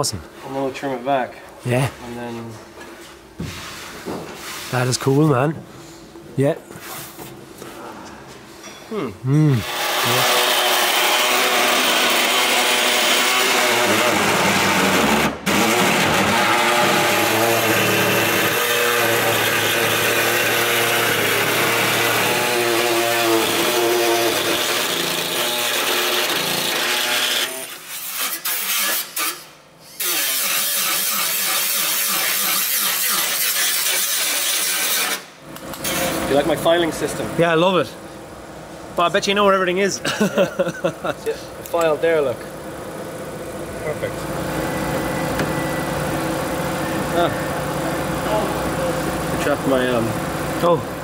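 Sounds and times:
power tool grinding metal: 9.6 - 36.5, 45.9 - 50.8.

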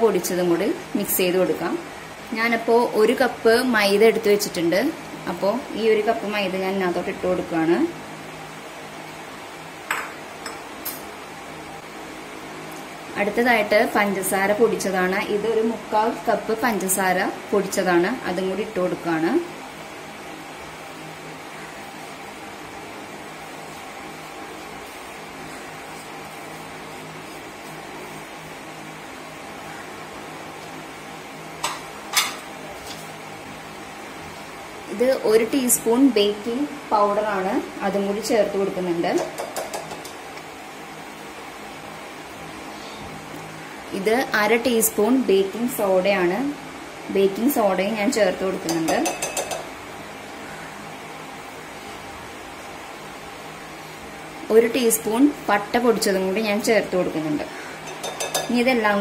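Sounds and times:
steady background hum: 0.0 - 59.0.

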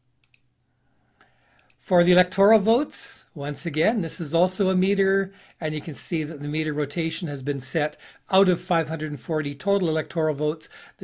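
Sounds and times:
computer mouse clicks: 0.2 - 0.5, 1.5 - 1.8
person speaking: 1.8 - 11.0.

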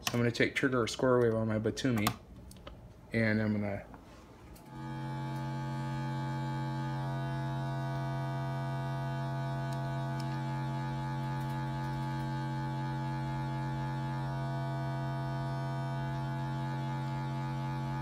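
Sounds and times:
buzzy synthesizer drone: 4.7 - 18.0.

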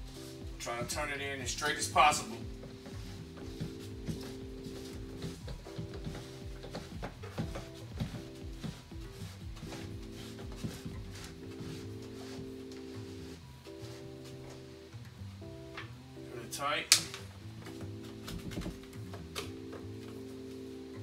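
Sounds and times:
background music with held chords: 0.0 - 21.0.

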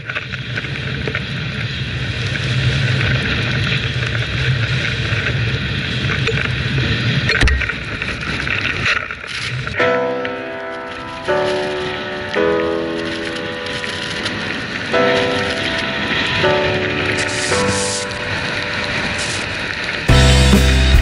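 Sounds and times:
wind rumble on microphone: 0.0 - 9.8
snowboard sliding through powder: 0.0 - 21.0.

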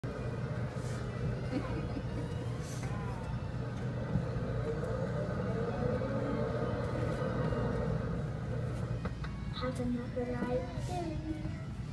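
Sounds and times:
kiddie ride low hum: 0.0 - 11.9.

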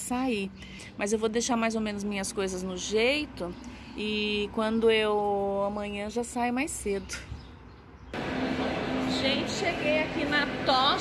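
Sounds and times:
faint low street rumble: 0.0 - 11.0
constant low hum: 8.1 - 11.0
railway station concourse din: 8.2 - 11.0.

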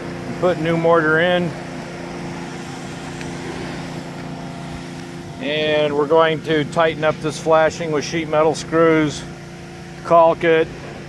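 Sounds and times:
motor running with low drone: 0.0 - 11.0.

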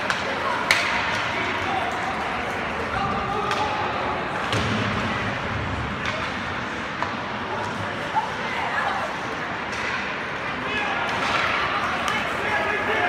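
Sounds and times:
hockey sticks and puck knocking: 0.0 - 7.8, 9.6 - 10.5, 11.1 - 12.5
spectators chattering: 0.0 - 13.0.

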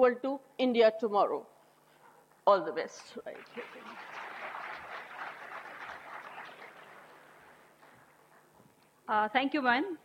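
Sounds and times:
audience applauding: 3.3 - 8.2.

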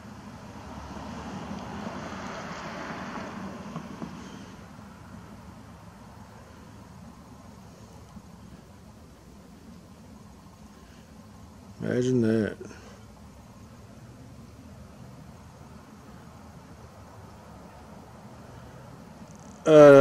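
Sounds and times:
distant vehicle rushing hiss: 0.0 - 19.9.

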